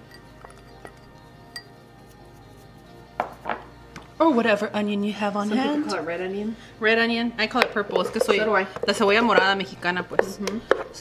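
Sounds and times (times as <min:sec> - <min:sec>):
glass bowl clinks and knocks: 0:00.0 - 0:01.8
quiet background music: 0:00.0 - 0:11.0.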